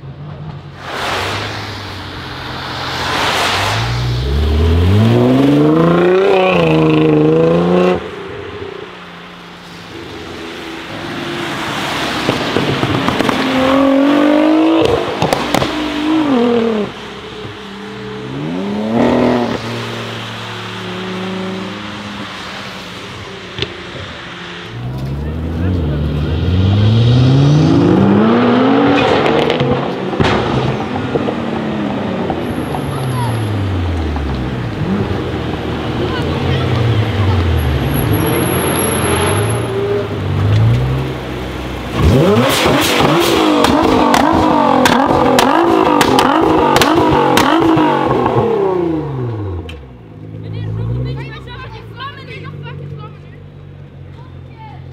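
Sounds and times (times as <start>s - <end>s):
car engine revving: 0.0s - 51.6s
exhaust pops and bangs: 12.2s - 13.7s, 14.8s - 16.0s, 28.9s - 31.6s, 41.9s - 48.5s.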